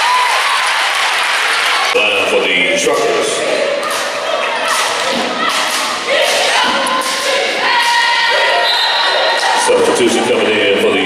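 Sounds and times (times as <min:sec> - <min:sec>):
cheerleaders chanting: 0:00.0 - 0:11.0
crowd voices: 0:00.0 - 0:11.0.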